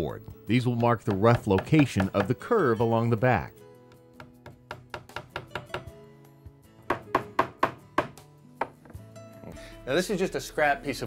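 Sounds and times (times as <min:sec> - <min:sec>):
hammer tapping nails into wood: 0:00.7 - 0:02.4, 0:03.9 - 0:05.9, 0:06.9 - 0:08.9.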